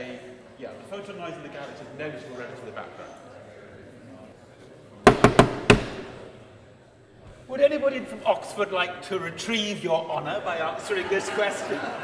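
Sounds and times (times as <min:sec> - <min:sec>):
sharp loud knocks with echo: 0:05.1 - 0:06.3.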